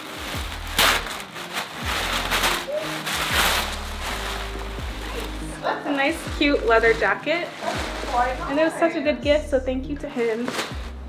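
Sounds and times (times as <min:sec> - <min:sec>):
tissue paper rustling: 0:00.0 - 0:09.1, 0:10.0 - 0:11.0
music with deep bass beat: 0:00.0 - 0:10.1, 0:10.7 - 0:11.0.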